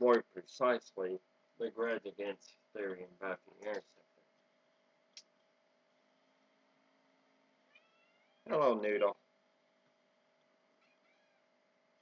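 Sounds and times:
faint steady hum: 0.0 - 12.0
cat meowing: 7.7 - 8.5, 10.8 - 11.5.

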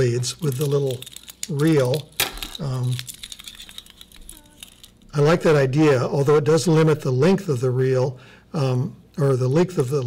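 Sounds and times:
small plastic parts clicking: 0.4 - 5.0.

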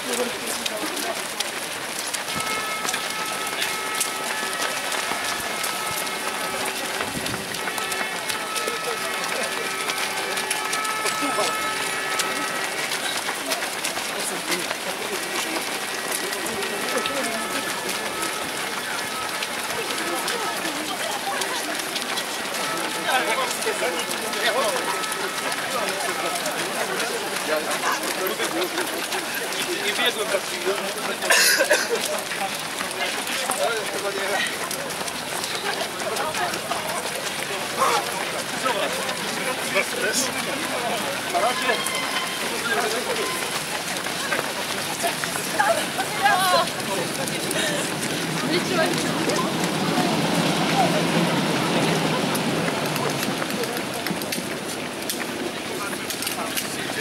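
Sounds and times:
crowd footsteps on wet asphalt: 0.0 - 57.0
indistinct voices: 0.0 - 57.0.

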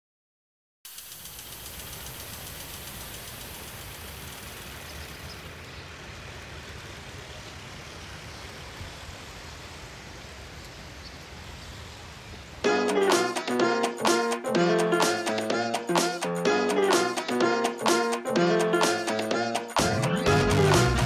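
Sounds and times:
high hiss: 0.9 - 21.0.

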